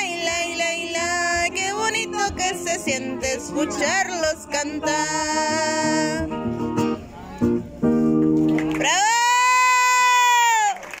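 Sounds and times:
woman singing: 0:00.0 - 0:06.4
acoustic guitar: 0:00.0 - 0:08.9.

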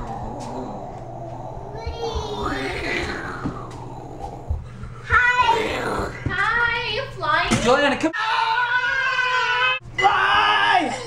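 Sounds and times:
child sing-song vocalizing: 0:01.6 - 0:03.8.

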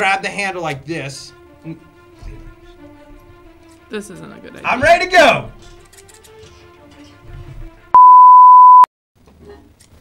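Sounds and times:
faint background music: 0:00.0 - 0:07.9
test-tone beep: 0:08.0 - 0:08.9.

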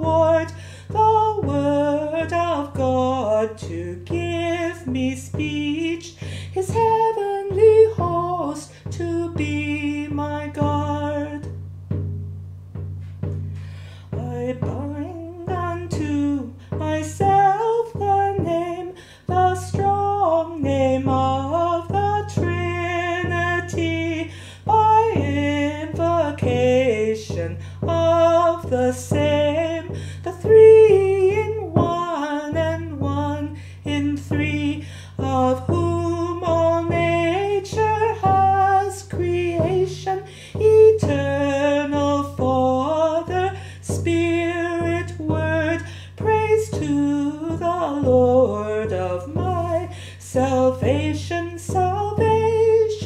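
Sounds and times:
woman singing hymn: 0:00.0 - 0:11.6, 0:13.8 - 0:53.0.

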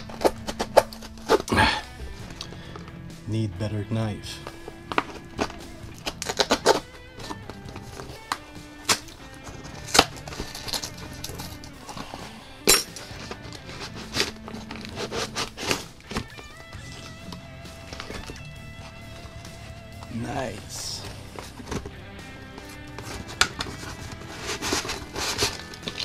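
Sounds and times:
paper envelope ripping: 0:00.0 - 0:01.6, 0:04.4 - 0:12.2, 0:13.0 - 0:21.9, 0:22.6 - 0:26.0
quiet background music: 0:00.0 - 0:26.0.

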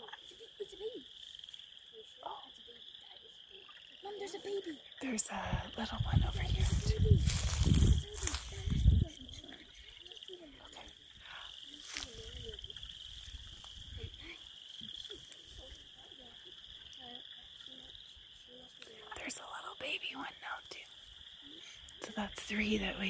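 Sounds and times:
frogs calling: 0:00.0 - 0:23.0
low rumble on microphone: 0:05.4 - 0:09.4.

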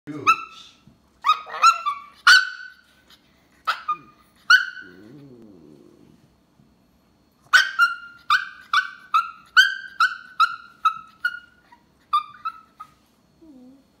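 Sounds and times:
small dog yipping: 0:01.2 - 0:02.9, 0:03.6 - 0:05.1, 0:07.5 - 0:13.7
small dog grumbling: 0:04.8 - 0:06.3, 0:13.4 - 0:13.9.

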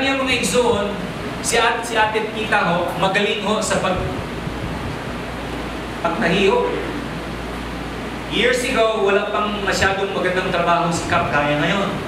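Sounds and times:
room noise hiss: 0:00.0 - 0:12.0
low hum: 0:04.2 - 0:08.7.

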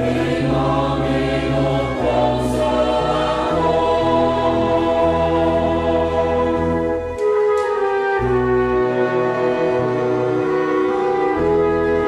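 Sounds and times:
choir singing a hymn: 0:00.0 - 0:07.1
low accompaniment: 0:00.0 - 0:12.0.

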